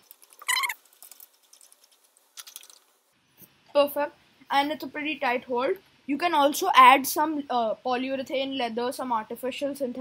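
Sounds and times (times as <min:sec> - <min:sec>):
short high squeak: 0:00.4 - 0:00.8.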